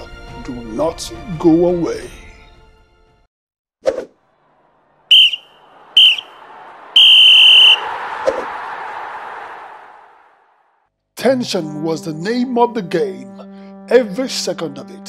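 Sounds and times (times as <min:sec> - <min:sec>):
referee's whistle blasts: 0:05.1 - 0:06.4, 0:07.0 - 0:08.0.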